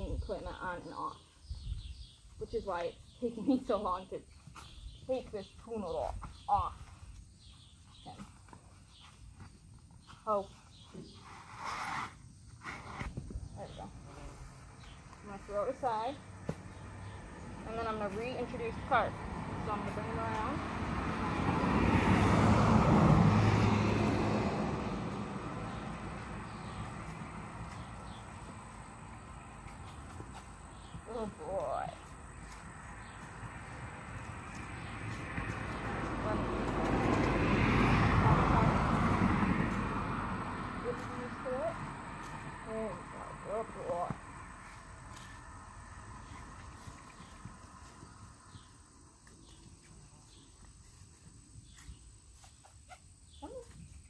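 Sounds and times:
vehicles passing on road: 0.0s - 54.0s.

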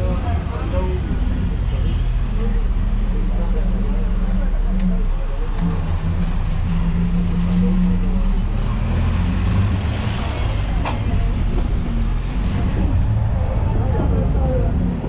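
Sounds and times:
road and traffic noise: 0.0s - 15.0s
vehicle engine humming: 0.0s - 15.0s.

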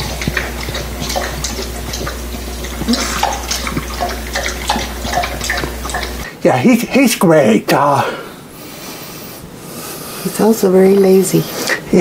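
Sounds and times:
puppy lapping water from bowl: 0.0s - 6.3s.

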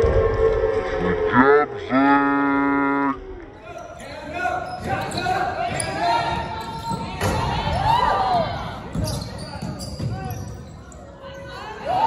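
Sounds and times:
sneakers squeaking on wooden floor: 3.6s - 12.0s
basketball bouncing: 4.6s - 10.8s.

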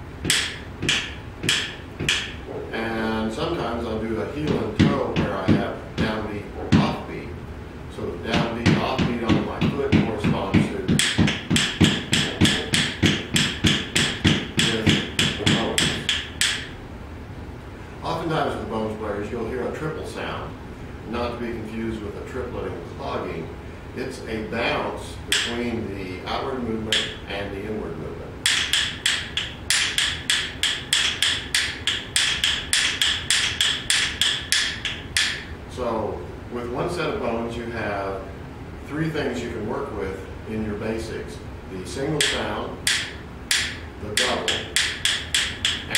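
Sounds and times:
wooden bones clacking: 11.0s - 16.7s, 28.5s - 35.5s, 42.2s - 45.9s.

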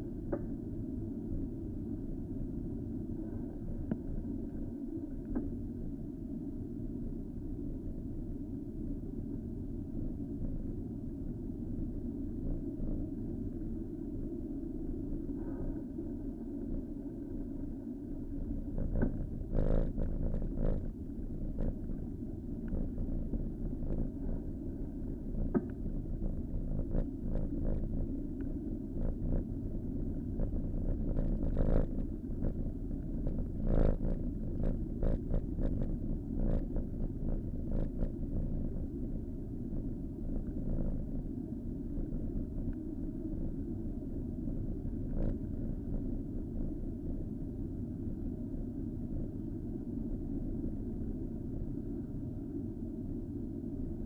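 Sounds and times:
wind on microphone: 18.2s - 47.2s.

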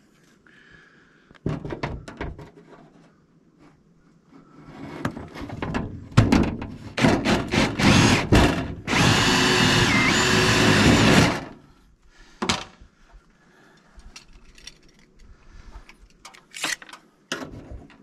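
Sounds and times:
cordless drill against metal gutter: 7.0s - 11.6s.

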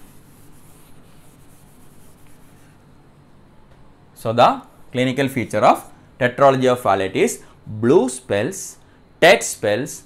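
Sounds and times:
eraser wiping a whiteboard: 0.0s - 2.8s.

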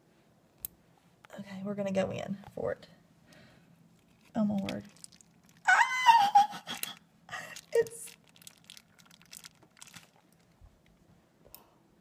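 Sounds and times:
plastic wrapping crinkling: 4.0s - 11.1s.

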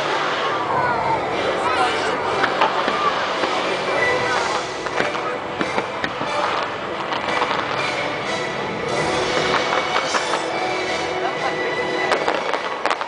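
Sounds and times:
sharp firework reports: 0.0s - 11.2s, 11.9s - 13.0s
crowd voices: 0.0s - 13.0s
fireworks exploding: 0.0s - 13.0s.

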